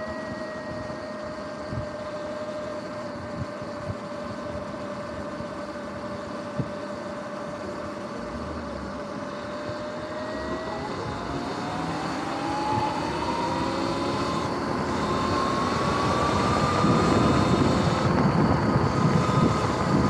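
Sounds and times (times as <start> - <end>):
electric motor whine rising: 0.0 - 7.0, 7.6 - 20.0
wind and road noise: 0.0 - 20.0.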